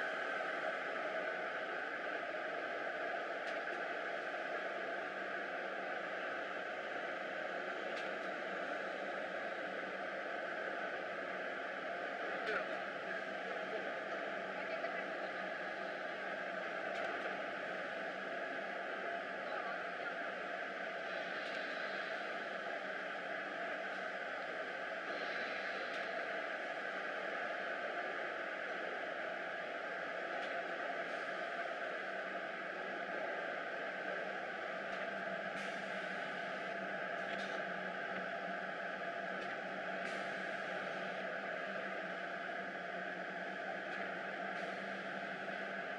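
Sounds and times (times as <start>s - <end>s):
laminating machine hissing and humming: 0.0s - 45.9s.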